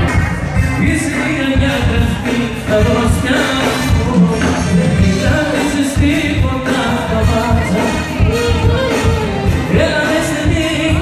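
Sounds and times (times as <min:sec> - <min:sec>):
live band playing: 0:00.0 - 0:11.0
steady drum beat: 0:00.0 - 0:11.0
man singing: 0:00.5 - 0:11.0.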